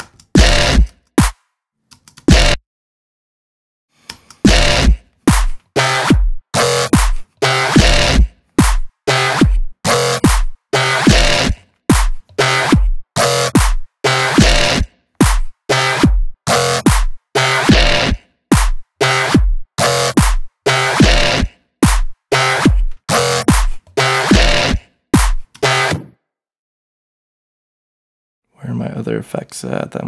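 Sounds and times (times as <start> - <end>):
synth bass stabs falling in pitch: 0.4 - 0.9, 2.3 - 2.6, 4.5 - 5.0, 5.8 - 8.3, 9.1 - 11.6, 14.1 - 14.9, 17.4 - 18.2, 20.7 - 21.5, 24.0 - 24.8.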